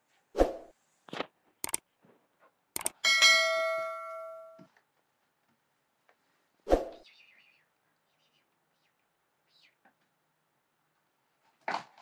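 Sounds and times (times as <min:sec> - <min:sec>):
small bell ringing: 0:03.0 - 0:04.6.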